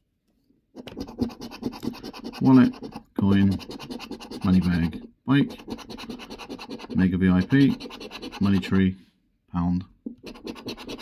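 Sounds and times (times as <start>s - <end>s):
coin scraping scratch card: 0.8s - 4.9s, 5.5s - 8.7s, 10.2s - 11.0s.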